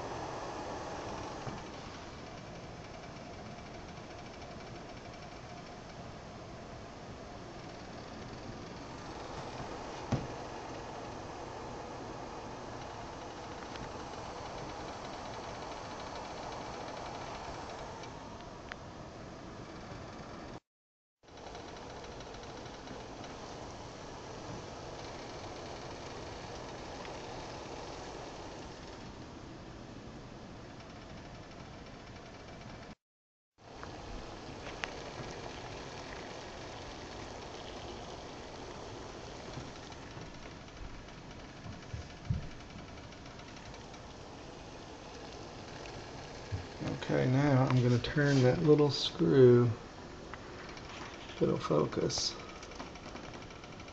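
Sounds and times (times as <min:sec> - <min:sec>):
water boiling in pot: 0:00.0 - 0:18.4, 0:21.3 - 0:29.4, 0:33.6 - 0:53.9.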